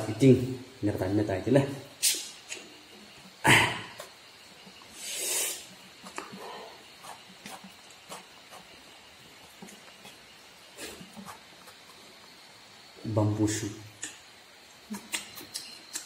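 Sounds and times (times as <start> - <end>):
short breathy hiss: 2.0 - 2.4, 4.9 - 6.8.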